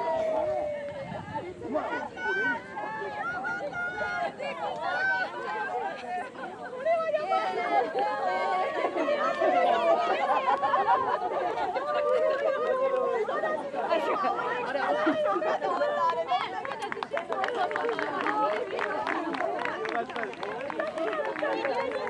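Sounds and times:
children talking and calling out: 0.0s - 19.7s.

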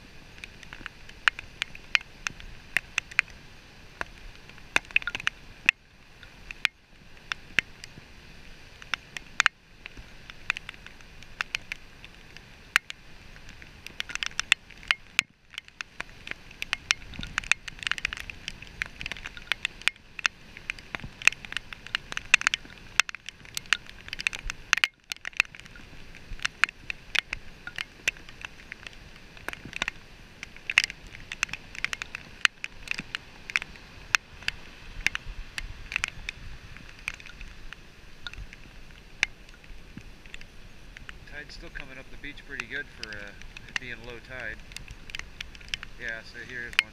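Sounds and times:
rain ticking: 0.0s - 46.9s
faint surf rushing: 25.6s - 46.9s.

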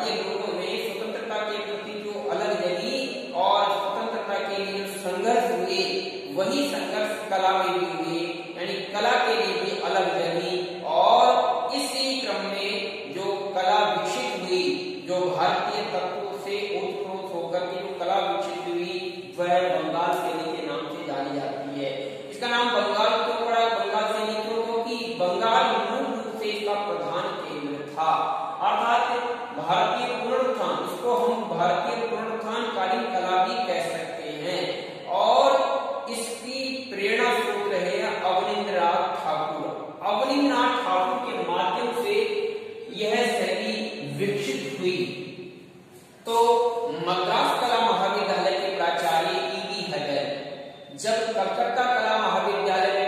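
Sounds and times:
man lecturing: 0.0s - 45.2s, 45.9s - 53.0s
man talking: 0.0s - 45.2s, 46.0s - 53.0s.

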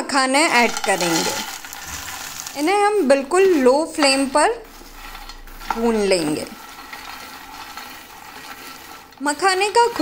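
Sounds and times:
spatula stirring nuts in pan: 0.0s - 10.0s.

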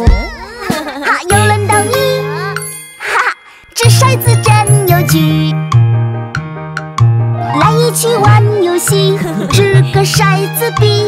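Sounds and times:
cartoon child singing: 0.0s - 5.6s, 7.5s - 11.0s
cartoon children's song: 0.0s - 5.8s, 7.4s - 11.0s
bright chime: 1.5s - 6.2s.

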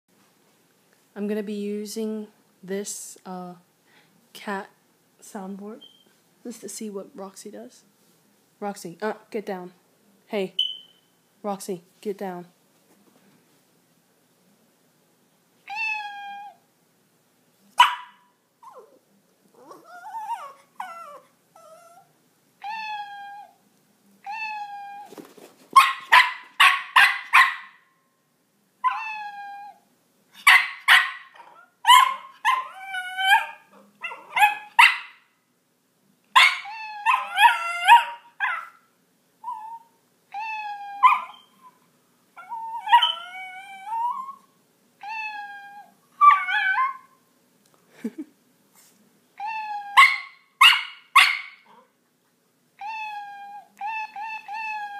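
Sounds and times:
dog barking in short bursts: 17.8s - 18.3s, 25.8s - 27.8s.

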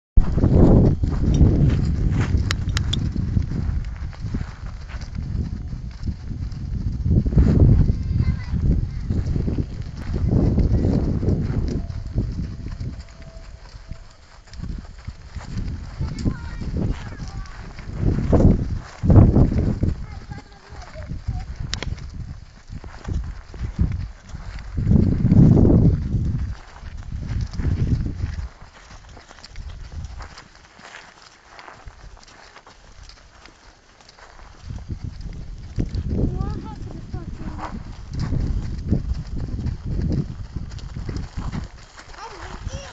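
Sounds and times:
low rumbling: 0.2s - 20.4s
horses trotting on gravel: 0.2s - 42.9s.

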